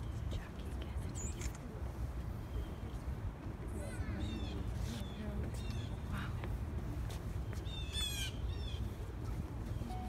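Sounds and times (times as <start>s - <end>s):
birds calling: 7.4s - 9.0s.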